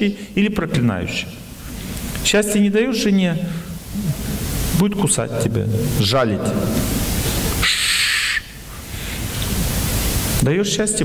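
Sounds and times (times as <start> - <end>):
background hiss: 0.0 - 11.0
brief bright hiss: 7.0 - 8.5.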